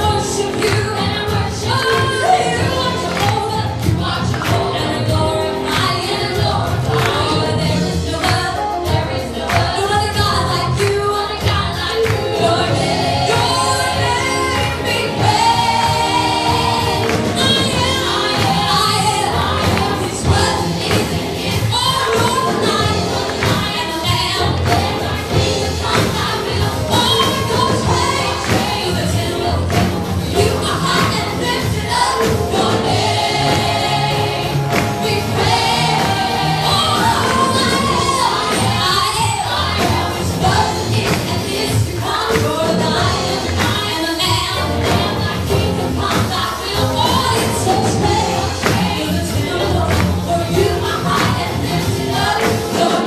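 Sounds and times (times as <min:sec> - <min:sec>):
group singing worship song: 0:00.0 - 0:53.0
live band accompaniment: 0:00.0 - 0:53.0.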